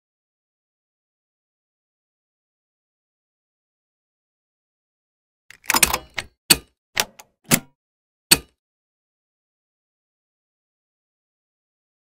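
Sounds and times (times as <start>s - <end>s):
short sharp clicks and hits: 8.3s - 8.6s.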